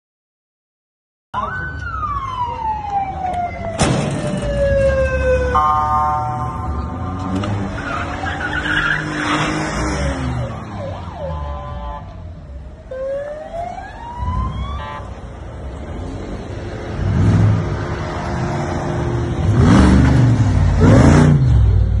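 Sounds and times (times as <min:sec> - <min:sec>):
siren wailing: 0:01.4 - 0:09.4, 0:10.2 - 0:15.1
car engines rumbling: 0:01.4 - 0:22.0.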